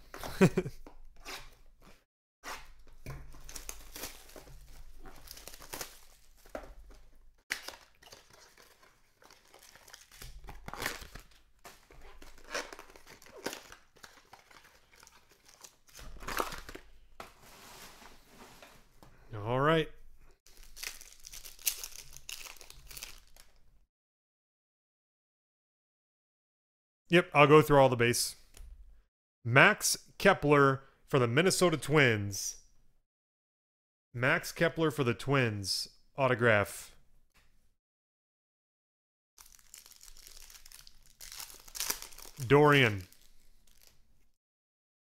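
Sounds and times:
cellophane and cardboard crinkling: 2.7s - 18.6s, 20.5s - 23.6s, 39.4s - 44.2s
cards rustling and clicking: 2.8s - 16.8s.

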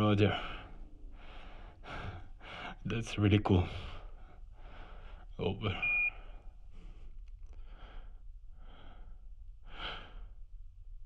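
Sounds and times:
high radio beep: 5.7s - 6.2s.

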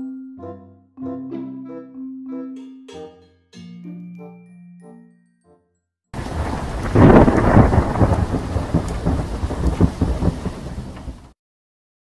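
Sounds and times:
rain-like hiss: 6.2s - 11.3s
thunder crack and rumble: 6.2s - 11.4s.

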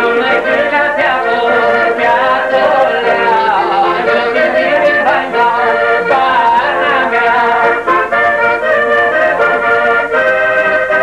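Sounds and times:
man singing folk song: 0.0s - 10.0s.

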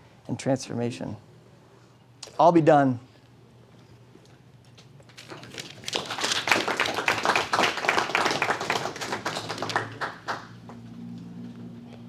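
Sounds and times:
audience applauding: 5.3s - 10.8s.

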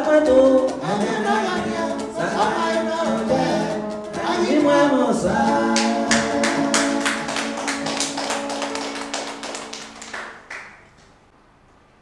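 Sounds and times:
person singing: 0.0s - 7.4s.

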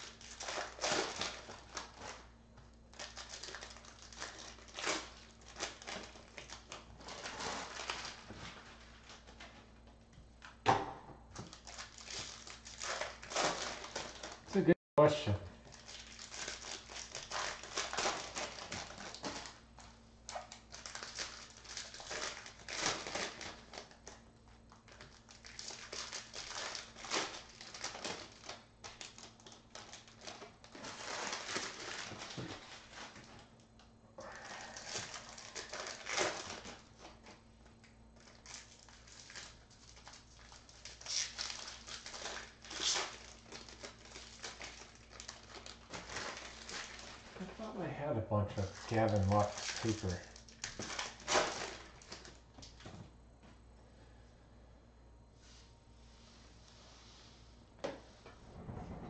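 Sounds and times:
foil wrappers crinkling and tearing: 0.0s - 9.7s, 11.4s - 14.6s, 15.6s - 47.6s, 48.6s - 52.8s.

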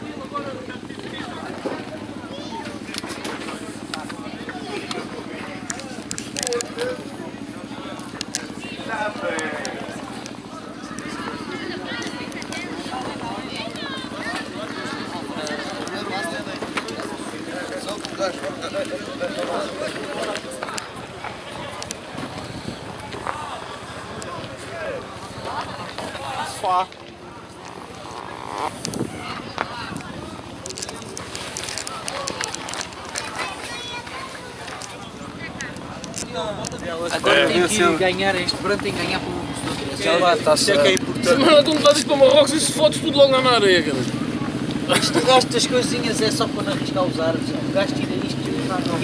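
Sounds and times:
people talking indistinctly: 0.0s - 49.0s.

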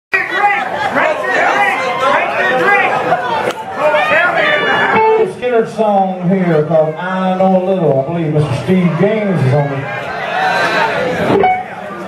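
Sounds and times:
people chattering: 0.1s - 12.0s
man speaking through microphone: 5.0s - 9.9s.

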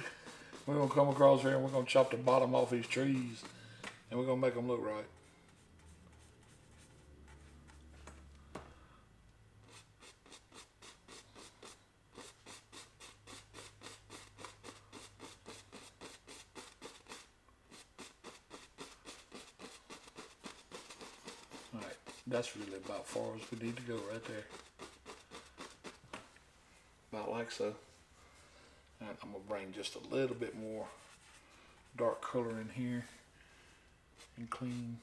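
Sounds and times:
paintbrush scratching on canvas: 0.0s - 3.6s, 4.4s - 8.0s, 9.6s - 26.0s, 29.7s - 32.8s, 34.2s - 35.0s.

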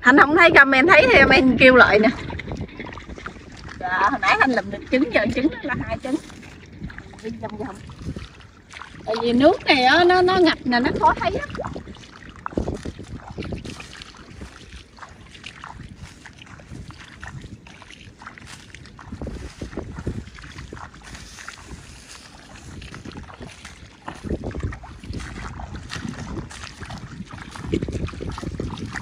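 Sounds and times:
footsteps wading through water and mud: 0.0s - 29.0s.

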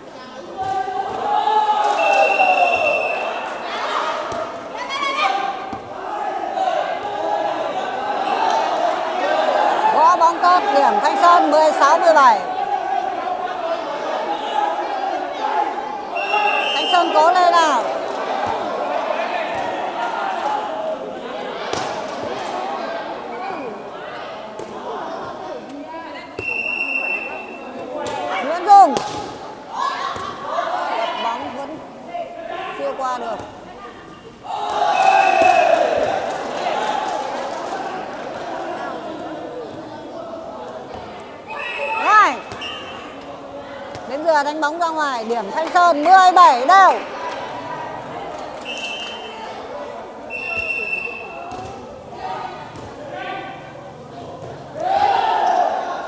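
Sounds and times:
people shouting: 0.4s - 24.1s, 26.4s - 33.4s, 34.4s - 40.8s, 41.4s - 45.2s, 50.3s - 56.0s
referee's whistle: 1.9s - 3.5s, 16.1s - 17.3s, 26.4s - 27.7s, 34.9s - 35.8s, 41.5s - 43.1s, 48.6s - 49.4s, 50.3s - 51.5s.

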